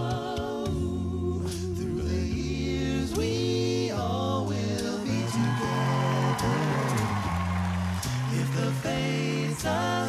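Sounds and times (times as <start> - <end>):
a cappella group singing chords: 0.0 - 10.0
deep vocal bass line: 0.0 - 10.0.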